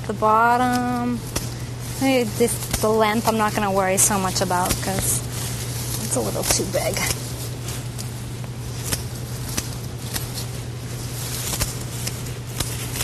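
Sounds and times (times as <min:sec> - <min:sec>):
steady low hum: 0:00.0 - 0:13.0
scissors snipping stems: 0:00.6 - 0:05.3, 0:05.9 - 0:07.4, 0:08.8 - 0:10.6, 0:11.3 - 0:13.0.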